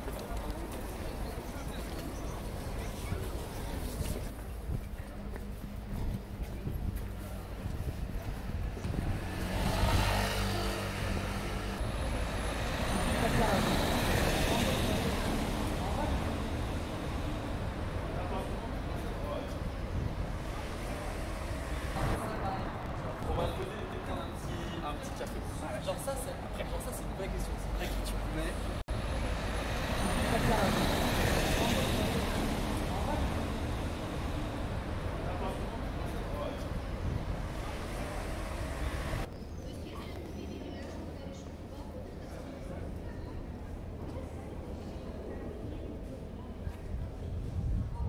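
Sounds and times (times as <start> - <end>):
passers-by talking: 0.0 - 48.0
traffic noise: 0.0 - 48.0
motor vehicle approaching: 8.7 - 19.1.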